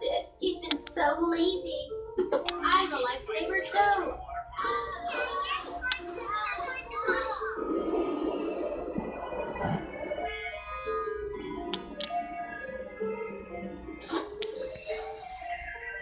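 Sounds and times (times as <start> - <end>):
sharp clicks: 0.7 - 1.0, 11.7 - 12.2.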